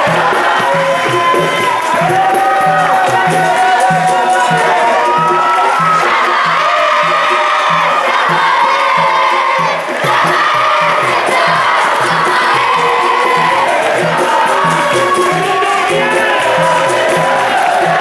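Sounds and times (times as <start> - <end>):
children singing together: 0.0 - 18.0
people clapping: 0.0 - 18.0.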